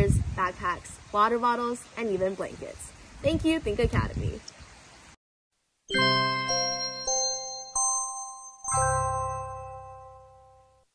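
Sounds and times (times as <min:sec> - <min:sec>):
bell-like chime jingle: 0:05.9 - 0:10.8.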